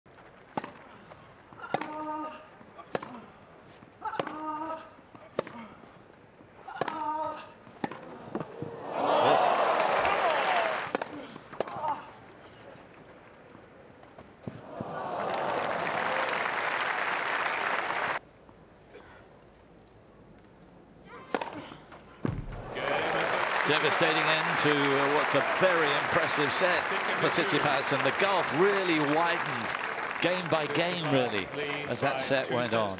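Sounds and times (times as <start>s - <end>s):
crowd applauding and cheering: 8.8s - 10.9s, 14.6s - 18.2s, 22.5s - 32.6s.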